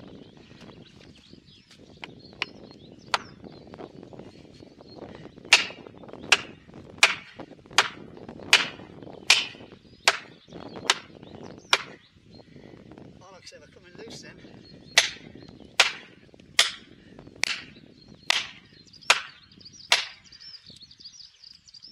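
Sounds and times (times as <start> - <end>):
hammer striking wedges: 5.5 - 10.3, 11.7 - 12.0, 15.8 - 17.7, 18.3 - 20.2.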